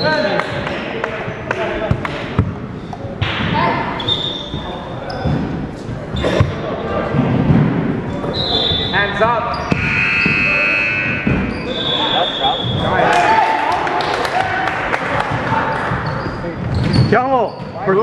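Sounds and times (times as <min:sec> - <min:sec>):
players' voices echoing: 0:00.0 - 0:18.0
sneakers squeaking: 0:01.3 - 0:13.0, 0:15.3 - 0:18.0.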